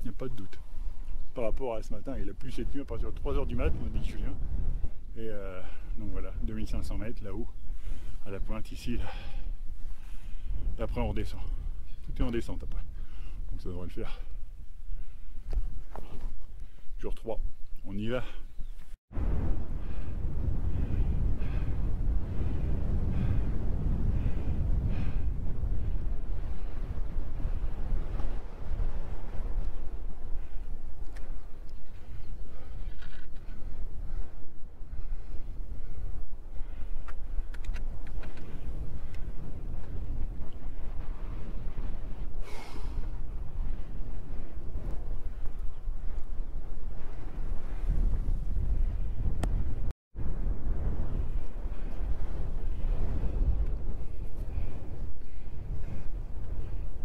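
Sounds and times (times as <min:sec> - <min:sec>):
wind buffeting microphone: 0:00.0 - 0:57.0
footsteps on stony path: 0:15.4 - 0:16.6.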